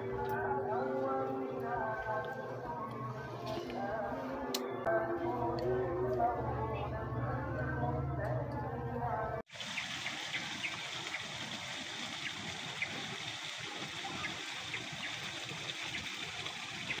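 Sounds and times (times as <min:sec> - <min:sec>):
trickle of running water: 0:09.5 - 0:17.0.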